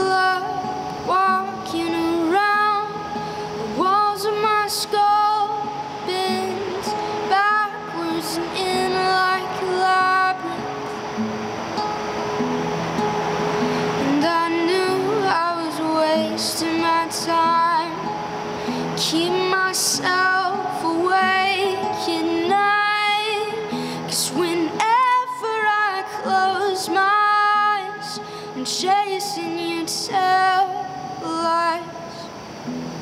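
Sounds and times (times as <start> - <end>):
woman singing: 0.0 - 11.0, 13.8 - 32.4
acoustic guitar: 0.0 - 33.0.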